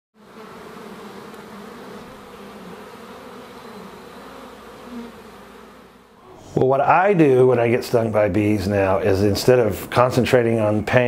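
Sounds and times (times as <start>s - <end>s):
bees buzzing: 0.2s - 11.0s.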